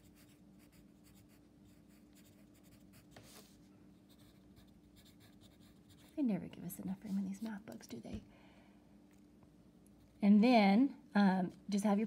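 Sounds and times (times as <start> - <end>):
pencil scratching on paper: 0.0 - 3.5.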